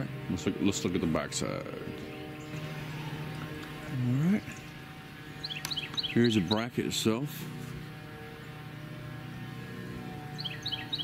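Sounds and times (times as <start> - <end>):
steady low hum: 0.0 - 11.0
bird chirping: 0.5 - 11.0.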